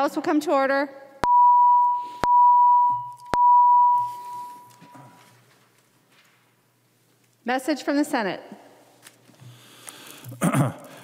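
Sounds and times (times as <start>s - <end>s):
bell-like tone ringing: 1.3s - 4.9s.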